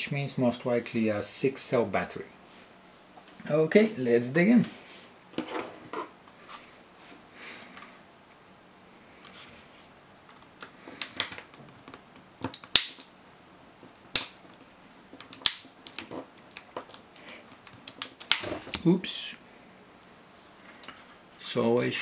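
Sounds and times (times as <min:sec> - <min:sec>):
plastic cracks and clicks: 0:10.3 - 0:13.1.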